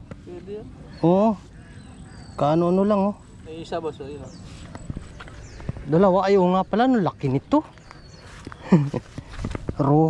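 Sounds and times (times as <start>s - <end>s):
flip-flop footsteps on dirt: 7.6s - 10.0s.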